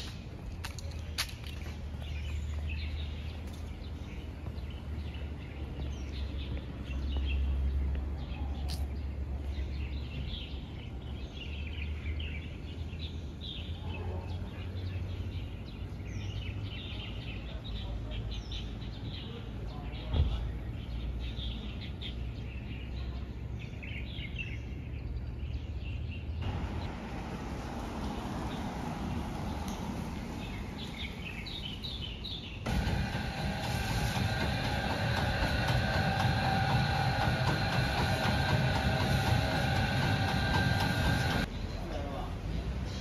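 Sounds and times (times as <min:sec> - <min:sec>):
low rumble: 0:32.6 - 0:41.5
machine noise with whining tones: 0:32.6 - 0:41.5.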